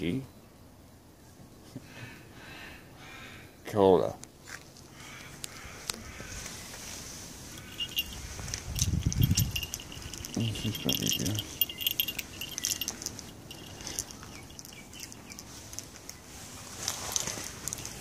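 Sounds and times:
cat collar bell jingling: 7.4 - 16.2
rattling clicks and rustling: 7.6 - 16.2.

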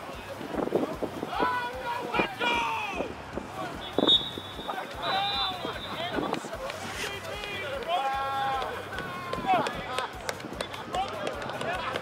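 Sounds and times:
men shouting: 1.3 - 3.2.

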